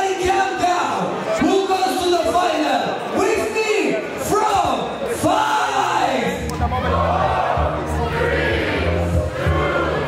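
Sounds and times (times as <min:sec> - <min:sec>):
crowd shouting: 0:04.3 - 0:10.0.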